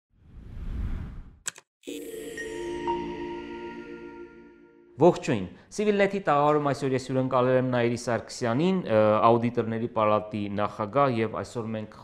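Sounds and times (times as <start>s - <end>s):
sharp clicks: 1.5s - 1.7s
chime-like chord: 1.9s - 5.2s.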